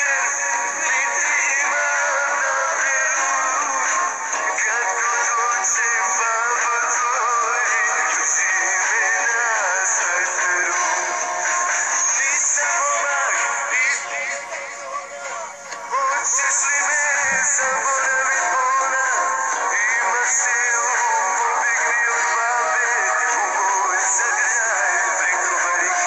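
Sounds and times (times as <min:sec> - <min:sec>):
backing music: 0:00.0 - 0:26.0
man singing with vibrato: 0:00.0 - 0:26.0.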